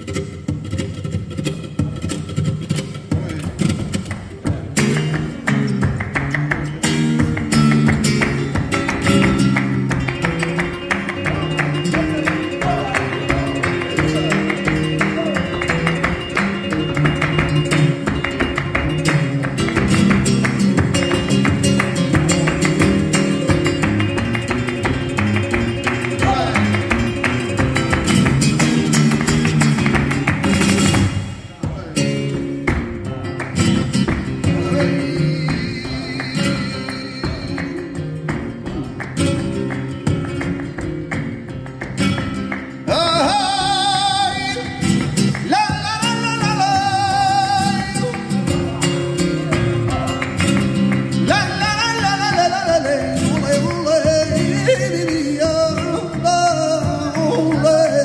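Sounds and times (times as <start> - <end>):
flamenco guitar: 0.0 - 58.0
hand clapping on the beat: 0.0 - 58.0.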